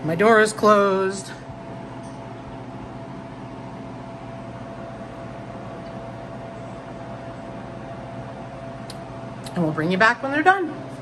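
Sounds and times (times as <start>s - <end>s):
freeze dryer machine hum: 0.0s - 11.0s.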